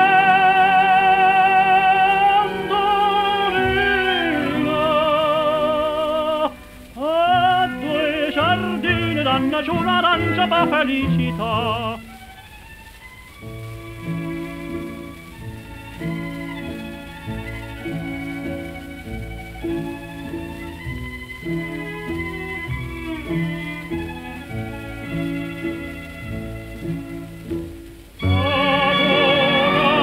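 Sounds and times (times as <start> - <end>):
orchestral strings and bass: 0.0 - 30.0
tenor singing with vibrato: 0.0 - 30.0.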